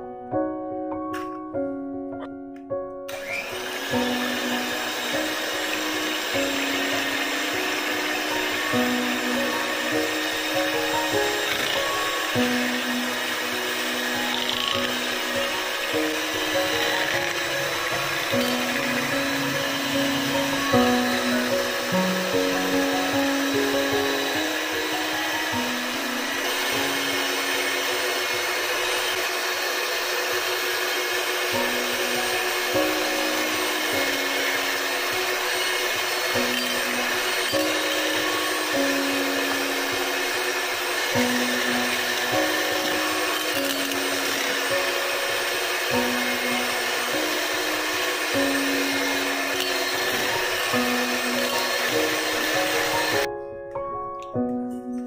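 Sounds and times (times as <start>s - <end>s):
background music with held notes: 0.0s - 55.0s
electric hand mixer running: 3.1s - 53.3s.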